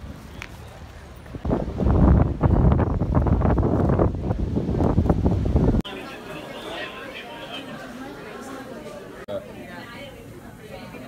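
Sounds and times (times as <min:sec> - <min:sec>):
wind buffeting microphone: 0:00.8 - 0:05.8.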